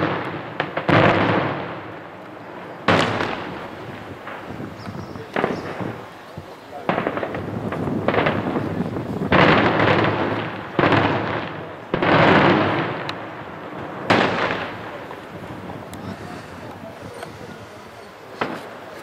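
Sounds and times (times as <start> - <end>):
firework bangs echoing: 0.0 - 19.0.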